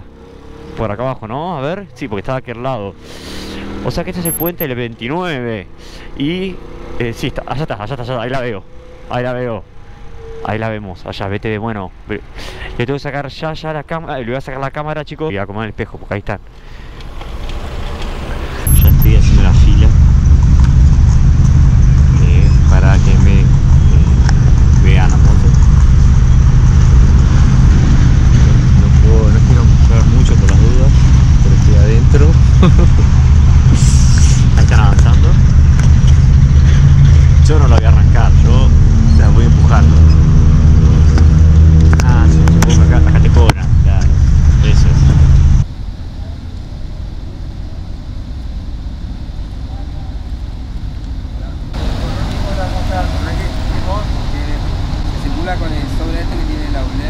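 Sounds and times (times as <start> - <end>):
passing traffic: 0.0 - 57.0.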